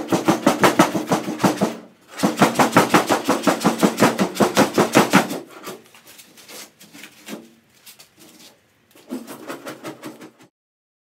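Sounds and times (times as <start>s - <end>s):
hand scraper scraping steel roof: 0.0s - 10.5s.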